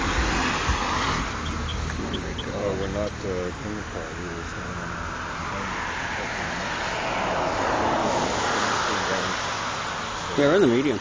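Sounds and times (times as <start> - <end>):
car passing on road: 0.0 - 11.0.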